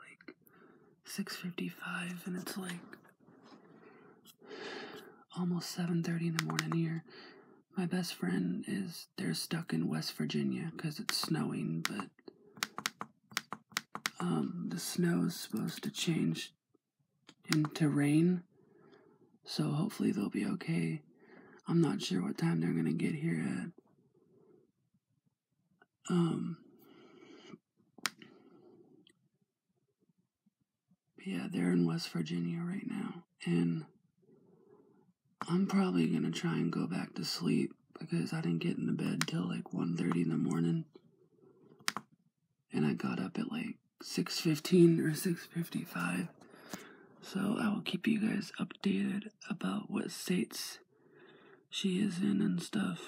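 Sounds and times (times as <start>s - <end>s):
breathing close to microphone: 3.2s - 5.2s, 46.4s - 47.2s, 50.9s - 51.7s.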